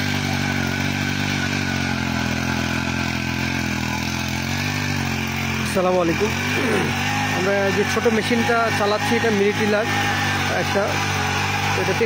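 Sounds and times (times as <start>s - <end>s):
tiller engine running: 0.0s - 12.0s.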